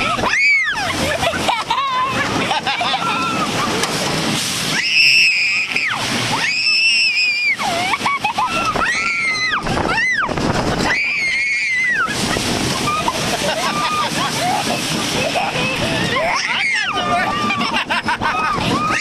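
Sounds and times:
girl screaming: 0.2 - 0.9, 4.7 - 12.2, 18.4 - 19.0
wind rushing on microphone: 8.5 - 19.0.

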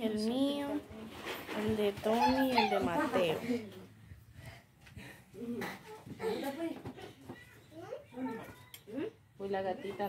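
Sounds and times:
people talking: 0.0 - 3.8.

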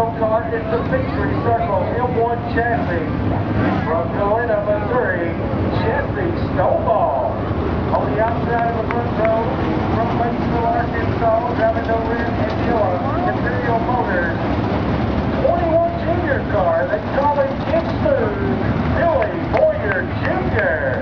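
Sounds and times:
people talking: 0.0 - 14.4, 15.4 - 21.0
race car engines rumbling: 0.0 - 21.0.

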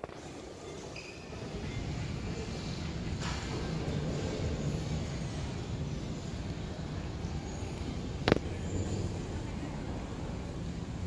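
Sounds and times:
airport terminal hall rumble: 0.0 - 11.0.

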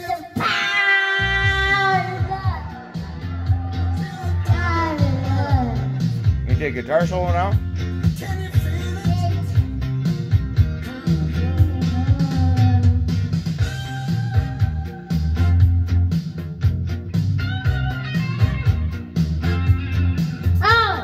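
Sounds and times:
bass and drum beat: 0.0 - 21.0
lead guitar solo: 0.4 - 3.9.

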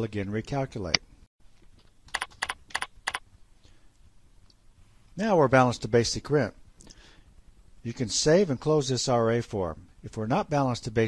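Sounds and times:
computer keyboard keystrokes: 2.1 - 3.2.

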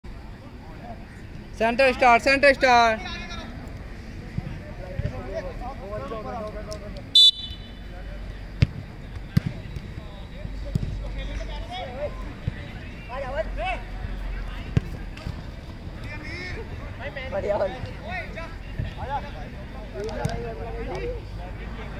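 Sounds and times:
football being kicked: 8.6 - 9.9.

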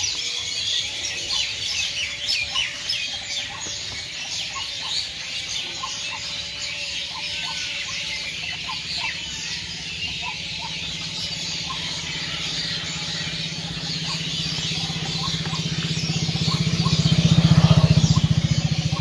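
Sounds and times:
small birds chirping: 0.0 - 19.0.

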